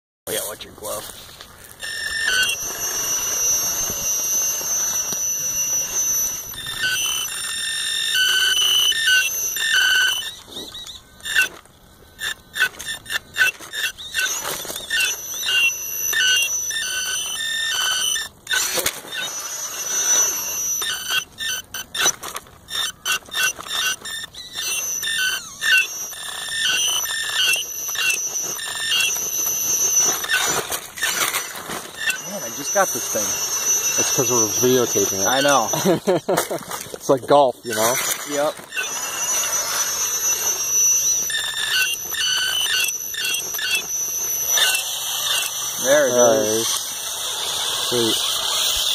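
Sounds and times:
electric motor whine: 0.3 - 48.9.

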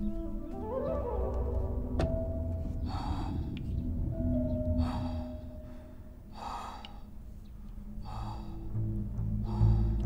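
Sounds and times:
low sustained background score: 0.0 - 10.0
breathy hisses: 2.8 - 3.7, 4.8 - 7.2, 7.9 - 8.8.

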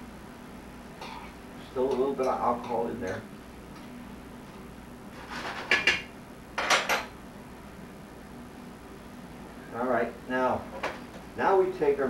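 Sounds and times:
utensil scraping a frying pan: 5.1 - 6.0.

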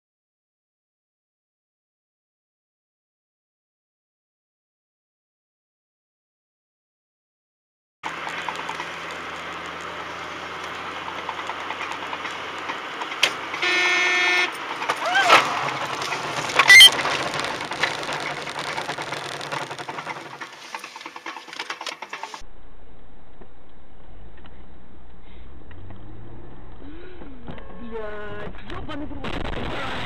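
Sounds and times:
car road noise: 8.0 - 30.0
car horn honking: 13.5 - 15.8.

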